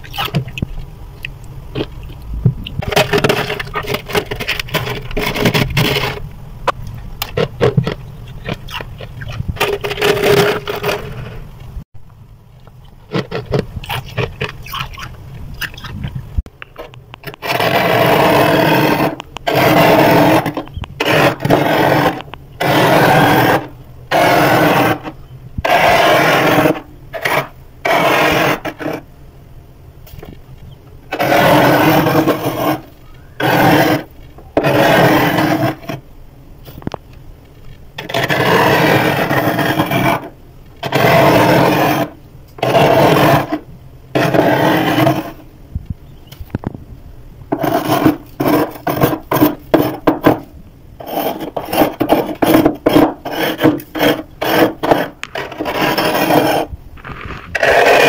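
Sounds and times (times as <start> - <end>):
metal spoon scraping frost: 31.1 - 36.0, 38.0 - 43.6, 44.2 - 45.4, 47.6 - 50.3, 51.0 - 58.0.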